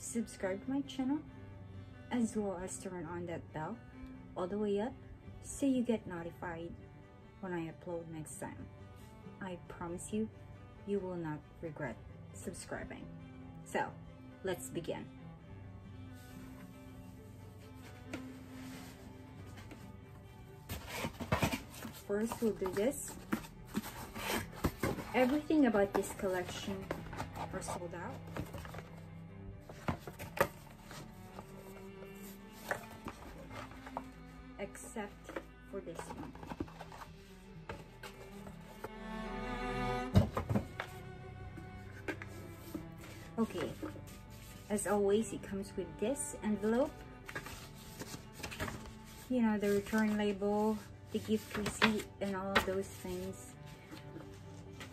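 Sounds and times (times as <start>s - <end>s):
faint background music: 0.0s - 54.9s
card envelope rustling: 20.7s - 28.9s, 35.3s - 38.8s
cardboard box knocks and scuffs: 40.1s - 40.9s.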